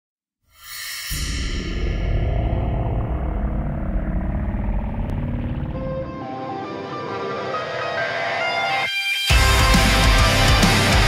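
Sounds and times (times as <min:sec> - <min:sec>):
deep rumbling explosion: 0:01.6 - 0:06.0.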